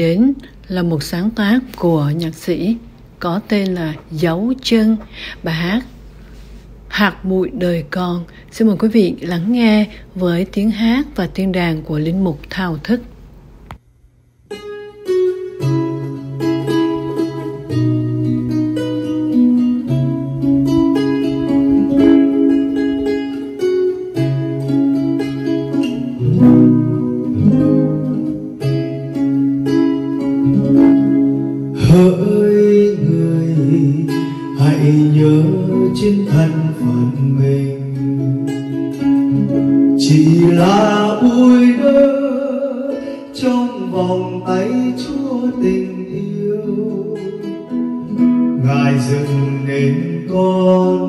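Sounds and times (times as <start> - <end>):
classical guitar playing: 14.5 - 51.0.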